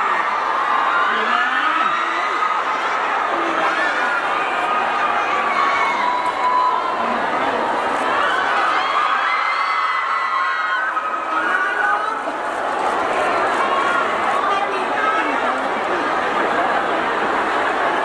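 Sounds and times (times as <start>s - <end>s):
crowd cheering and calling out: 0.0s - 18.0s.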